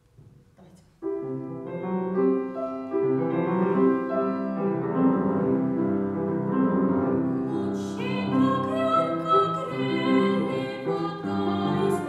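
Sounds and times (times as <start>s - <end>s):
grand piano playing chords: 1.0s - 12.0s.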